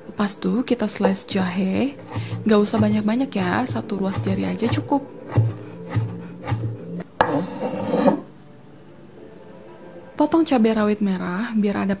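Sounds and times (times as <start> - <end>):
knife chopping on wooden board: 2.0 - 8.2
knife rasping scrape: 2.0 - 8.3.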